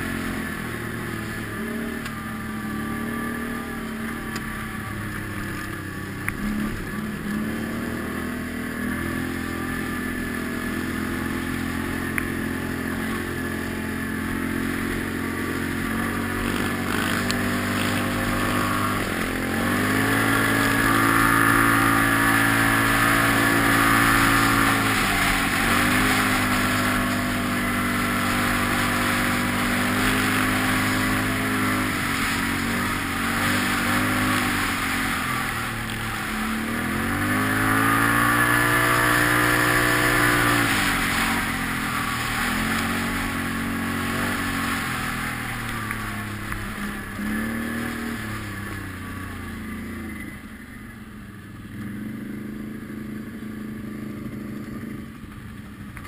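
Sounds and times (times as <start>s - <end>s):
quad bike engine revving: 0.0s - 56.0s.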